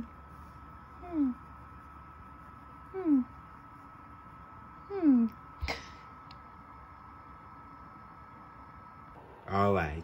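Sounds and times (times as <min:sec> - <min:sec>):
high-pitched hum: 0:00.0 - 0:10.0.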